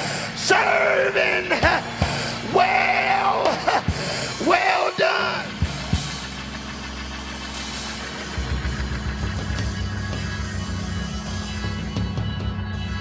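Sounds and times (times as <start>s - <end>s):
pulsing bass and drum beat: 0.0s - 13.0s
keyboard chord: 3.9s - 13.0s.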